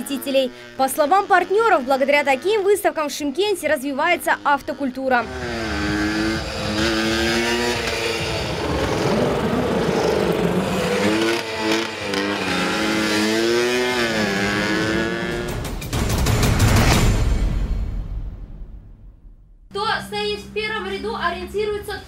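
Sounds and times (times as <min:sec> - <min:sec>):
go-kart engine revving: 0:00.0 - 0:15.7.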